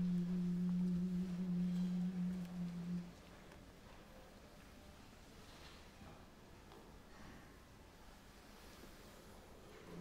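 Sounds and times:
choir holding low note: 0.0s - 3.2s.

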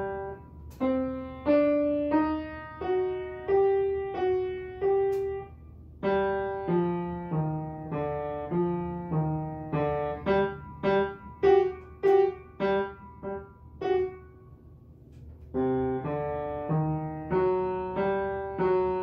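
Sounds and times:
upright piano melody: 0.0s - 14.4s, 15.5s - 19.0s.

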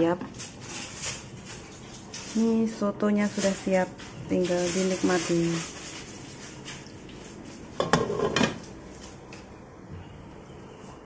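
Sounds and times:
kitchenware handling noise: 7.8s - 8.7s.

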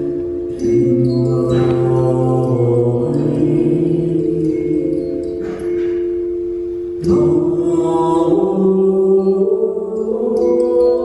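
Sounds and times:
steady drone: 0.0s - 6.3s, 7.0s - 11.0s
woman singing long notes: 0.6s - 5.6s, 7.0s - 11.0s.

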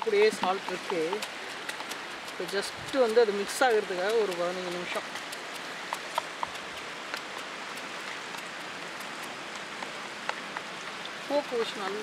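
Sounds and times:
water rushing hiss: 0.0s - 12.0s.

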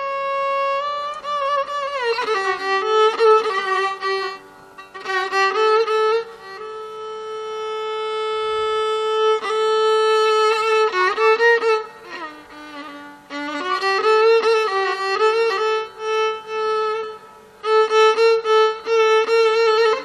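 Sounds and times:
violin playing: 0.0s - 20.0s.

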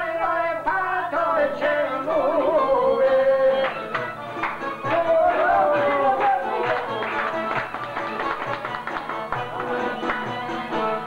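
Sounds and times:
man singing folk song: 0.0s - 3.8s.

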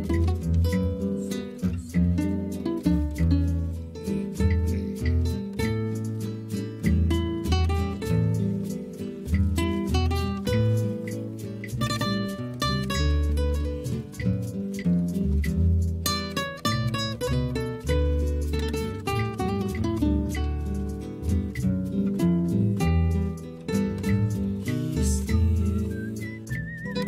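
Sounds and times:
acoustic guitars playing: 0.0s - 27.0s.

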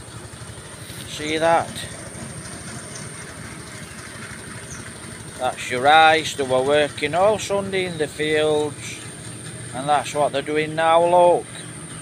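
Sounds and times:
small engine running: 0.0s - 12.0s.

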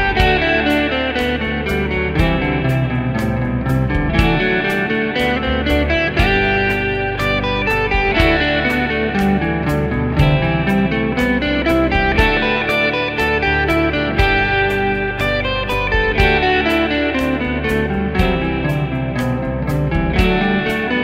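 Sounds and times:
backing track drum beat: 0.0s - 21.0s
electric guitar single-note runs: 0.0s - 21.0s.

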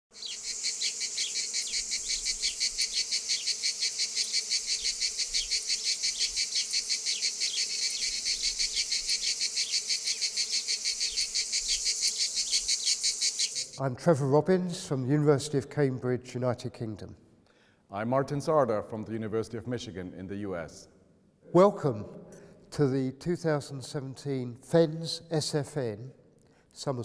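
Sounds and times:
crickets chirping: 0.1s - 13.8s.

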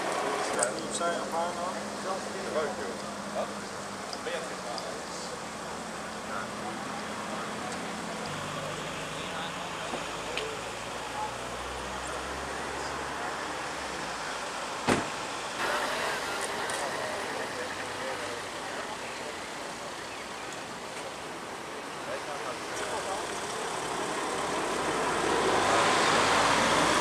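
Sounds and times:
sharp knock: 14.8s - 15.1s
passing vehicle tyre noise: 21.8s - 27.0s.

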